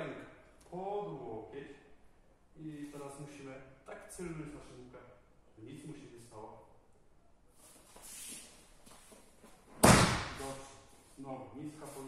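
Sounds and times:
body slapping onto mats: 0:09.6 - 0:10.4.

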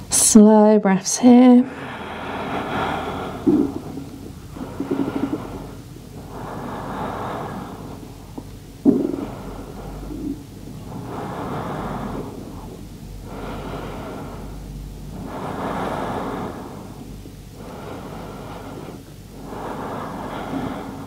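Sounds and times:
person breathing slowly: 0:01.7 - 0:21.0.

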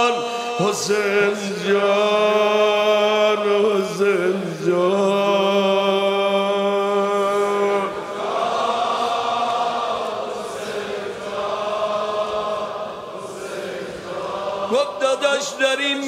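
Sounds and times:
crowd chanting in unison: 0:00.0 - 0:16.0.

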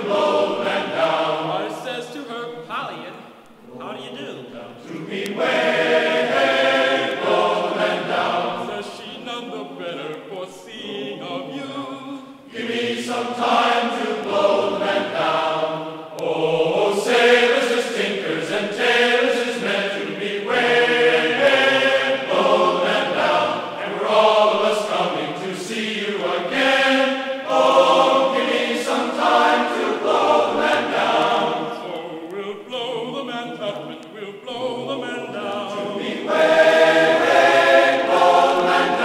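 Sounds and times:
choir singing: 0:00.0 - 0:02.6, 0:03.6 - 0:39.0.

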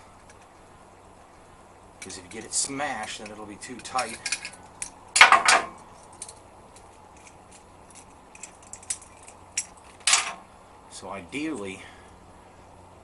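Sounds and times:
metal tool parts clinking: 0:02.0 - 0:10.4.

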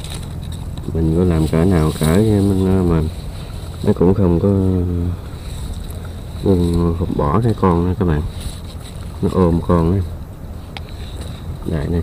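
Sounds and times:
man speaking: 0:00.9 - 0:03.2, 0:03.8 - 0:05.2, 0:06.4 - 0:08.4, 0:09.2 - 0:10.2, 0:11.6 - 0:12.0.

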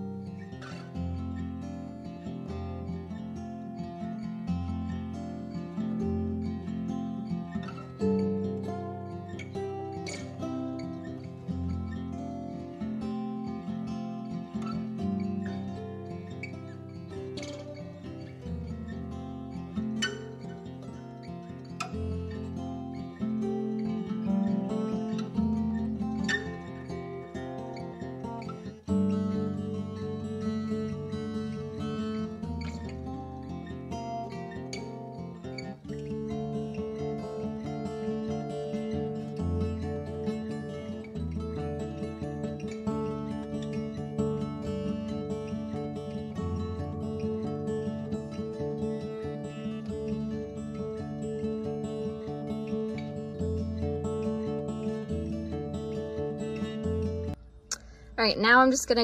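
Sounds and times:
acoustic guitar music: 0:00.0 - 0:59.0.

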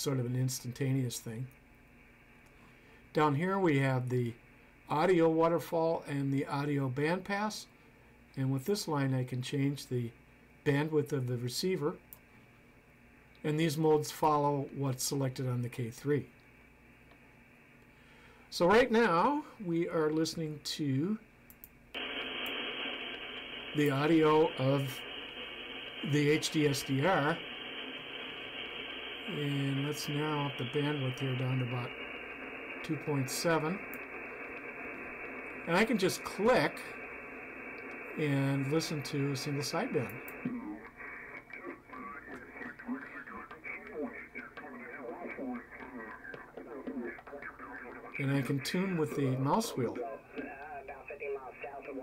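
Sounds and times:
radio band noise hiss: 0:00.0 - 0:01.6, 0:02.2 - 0:12.1, 0:13.4 - 0:16.7, 0:18.0 - 0:21.2, 0:22.0 - 0:52.0
faint clicks: 0:21.5 - 0:23.8, 0:33.8 - 0:35.7, 0:37.0 - 0:38.2.

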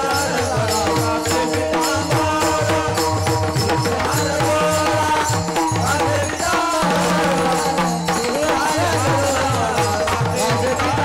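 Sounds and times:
group of men singing: 0:00.0 - 0:11.0.

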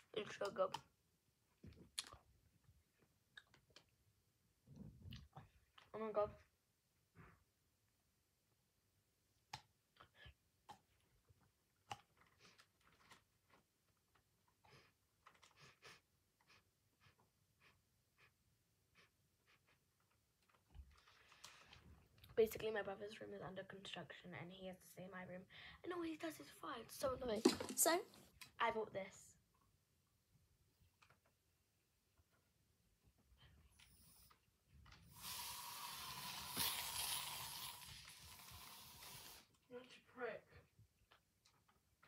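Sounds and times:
aerosol spray hiss: 0:35.1 - 0:39.5.

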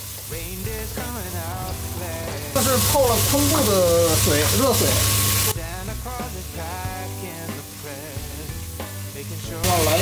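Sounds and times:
background music with melody: 0:00.0 - 0:10.0
squid sizzling in oil: 0:00.0 - 0:10.0.

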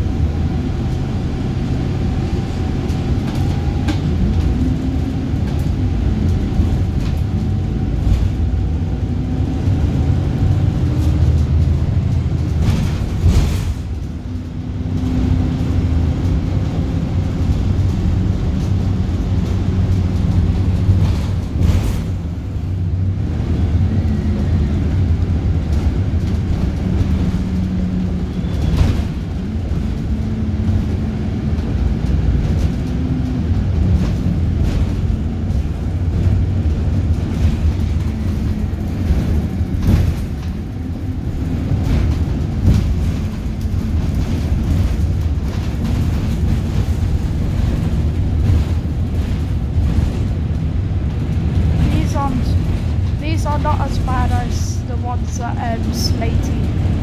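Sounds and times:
bus body knocks and rattles: 0:00.0 - 0:57.0
bus engine drone: 0:00.0 - 0:57.0.

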